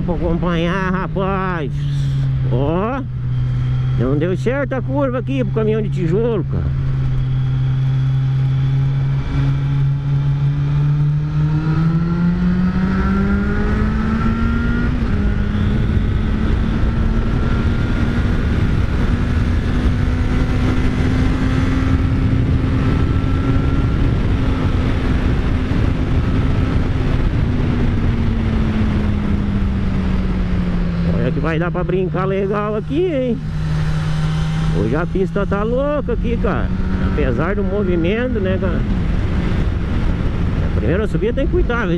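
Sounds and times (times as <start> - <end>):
motorcycle engine accelerating: 0.0 - 41.9
wind rush: 0.0 - 41.9.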